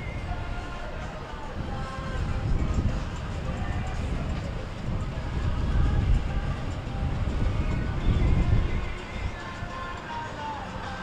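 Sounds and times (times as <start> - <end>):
boat engines rumbling: 0.0 - 11.0.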